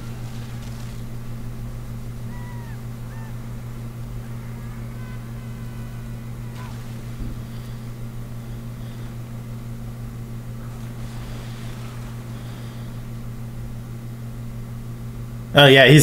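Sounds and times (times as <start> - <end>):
faint movie audio whistling: 0.0 - 13.4
steady low hum: 0.0 - 16.0.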